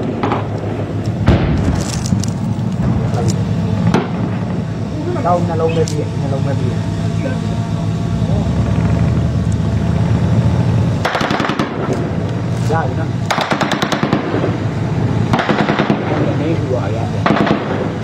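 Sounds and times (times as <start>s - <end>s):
steady low drone: 0.0s - 18.0s
automatic gunfire bursts: 11.0s - 11.9s, 13.3s - 14.4s, 15.3s - 16.2s, 17.2s - 17.8s.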